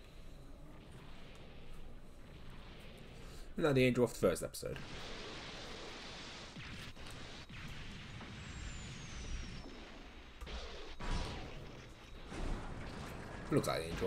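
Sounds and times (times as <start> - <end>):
rumbling aircraft and explosions: 0.0 - 14.0
sharp impacts: 0.7 - 14.0
falling whistle: 5.2 - 13.1.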